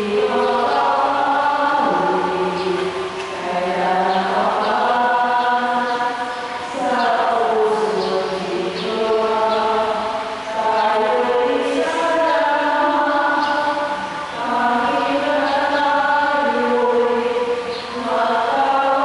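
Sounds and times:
choir singing a chant-like hymn: 0.0s - 19.0s.

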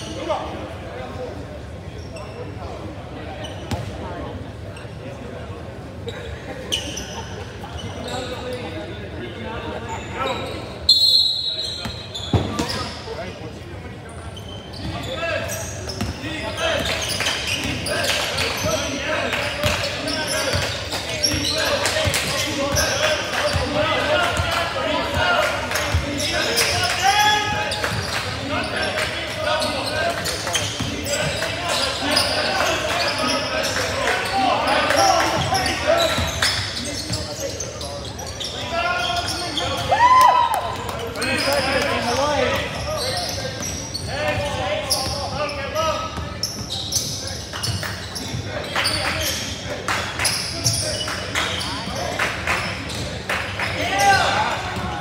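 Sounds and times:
sneaker squeaks: 1.9s - 4.1s, 5.9s - 8.8s, 9.7s - 40.1s, 40.8s - 55.0s.

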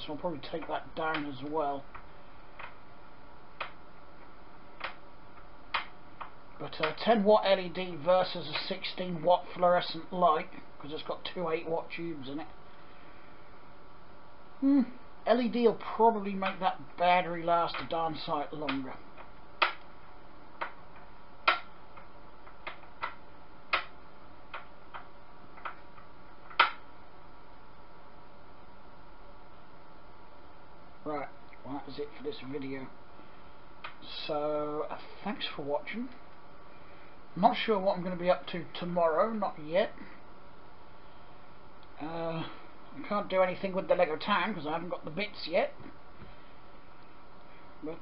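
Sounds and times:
steady low hiss: 0.0s - 48.0s.

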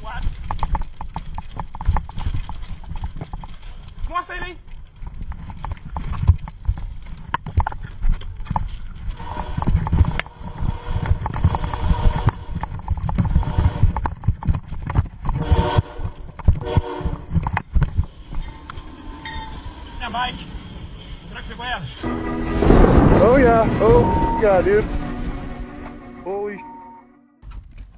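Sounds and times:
bicycle rumbling over sleepers: 0.0s - 26.5s
train in tunnel: 9.0s - 27.0s
train horn blasts: 9.2s - 10.0s, 15.4s - 17.3s, 21.9s - 27.3s.

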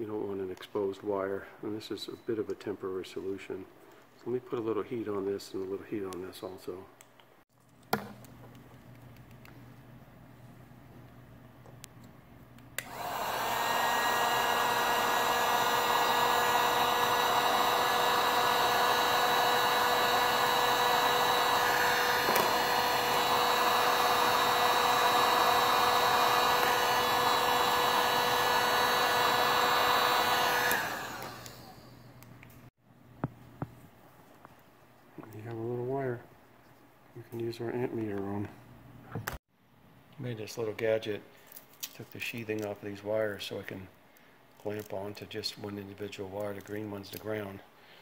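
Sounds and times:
hot air gun fan whine: 12.8s - 32.2s.

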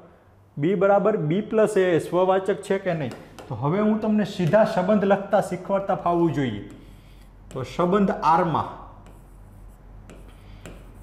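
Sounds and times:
writing scratching on board: 9.0s - 11.0s.

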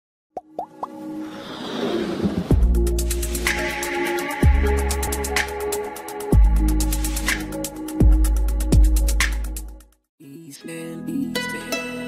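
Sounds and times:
quick rising pops: 0.4s - 2.6s
whoosh: 1.2s - 3.7s.

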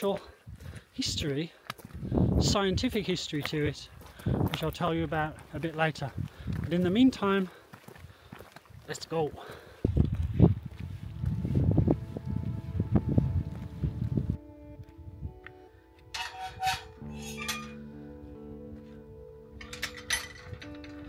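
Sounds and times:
footsteps on gravel: 0.1s - 12.4s
background music with held notes: 10.2s - 21.0s.

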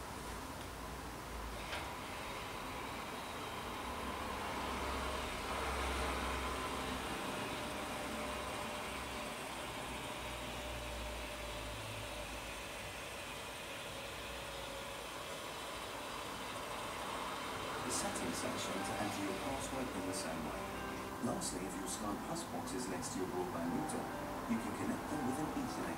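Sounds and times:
electric motor humming: 1.9s - 22.2s.

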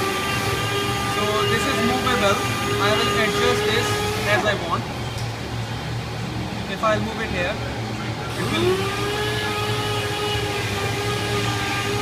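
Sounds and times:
machine hum droning: 0.0s - 12.0s.

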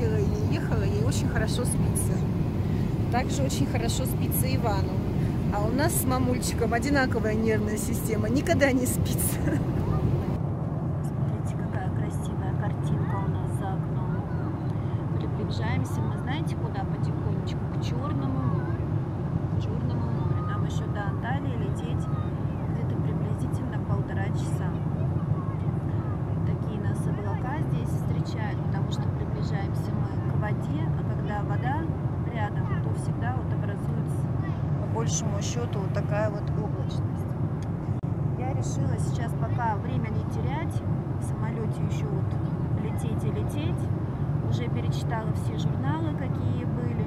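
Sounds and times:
airliner cabin drone: 0.0s - 47.0s
faint passenger chatter: 0.0s - 47.0s.

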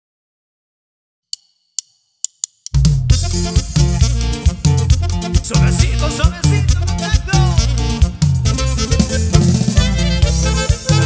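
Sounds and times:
drumstick count-in ticks: 1.3s - 4.2s
latin band playing: 2.8s - 11.0s.

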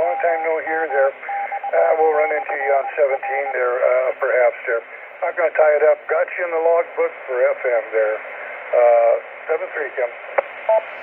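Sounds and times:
thin voice over radio speaker: 0.0s - 10.1s
steady low hum: 0.0s - 11.0s.

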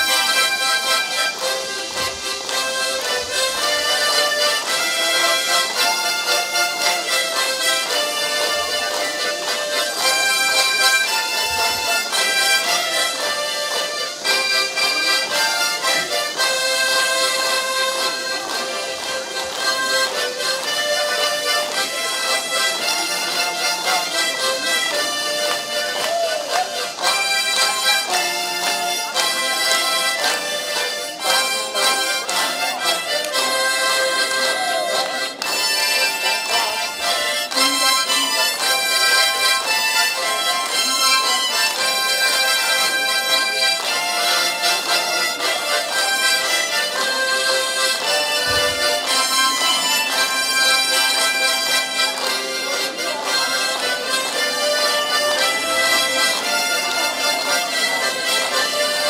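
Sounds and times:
harmonica ensemble playing: 0.0s - 59.0s.

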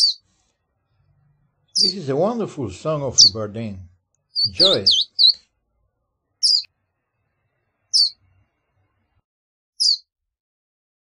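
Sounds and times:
bird whistling high notes: 1.8s - 2.0s, 4.4s - 5.4s, 6.4s - 6.7s, 8.0s - 8.2s, 9.8s - 10.0s.

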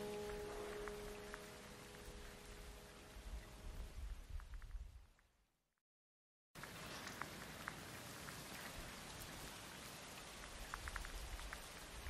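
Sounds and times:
raindrops plinking: 0.0s - 4.7s, 6.6s - 12.0s
rain falling steadily: 0.0s - 5.2s, 6.6s - 12.0s.

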